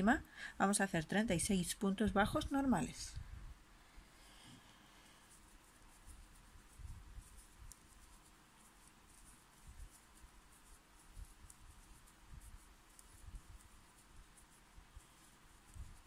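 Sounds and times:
crochet hook working yarn: 4.2s - 16.0s.

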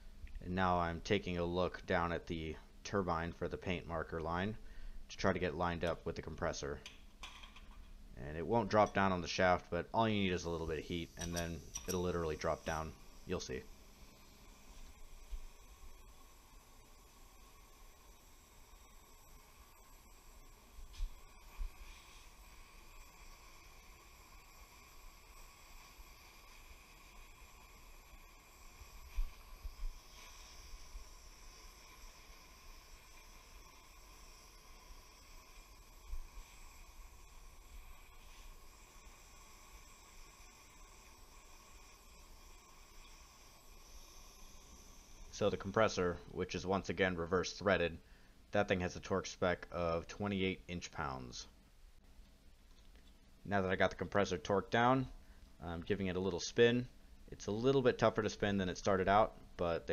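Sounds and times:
propane torch hissing: 0.0s - 51.6s, 53.4s - 59.9s.

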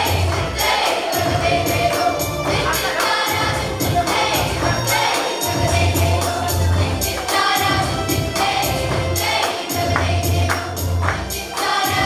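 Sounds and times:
children's choir singing: 0.0s - 12.0s
percussive beat: 0.0s - 12.0s.

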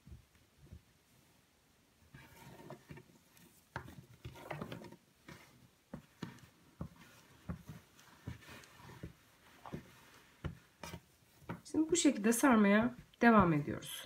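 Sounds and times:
rope scraping on table: 2.1s - 11.6s.

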